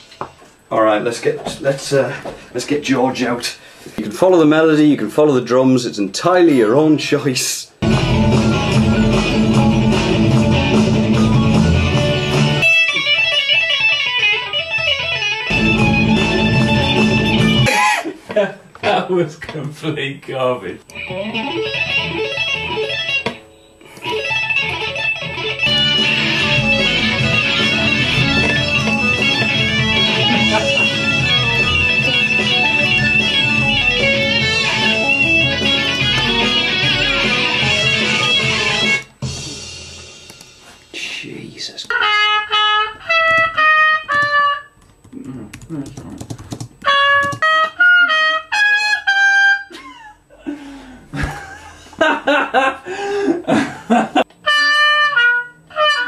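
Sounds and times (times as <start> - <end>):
electric guitar folk tune with band: 7.8 - 17.7, 21.0 - 39.6
single held notes stepping downward: 23.3 - 39.4.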